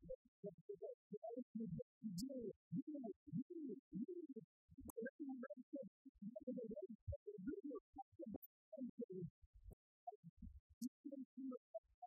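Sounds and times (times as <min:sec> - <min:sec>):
muffled man reciting poetry: 0:00.0 - 0:12.0.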